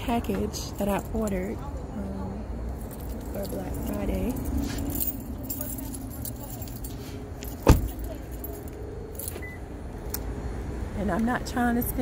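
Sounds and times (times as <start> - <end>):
low outdoor rumble: 0.0 - 12.0
keys jingling: 2.7 - 9.6.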